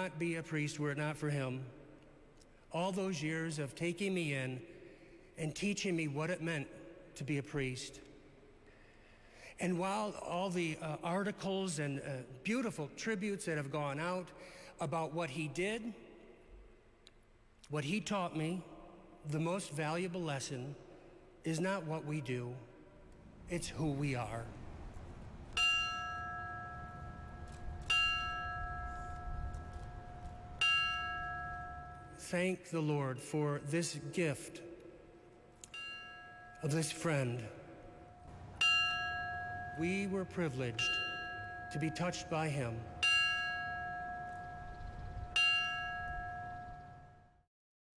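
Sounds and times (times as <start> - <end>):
bell tolling: 25.6 - 32.3, 35.7 - 47.2
brass bell ringing: 38.2 - 44.8.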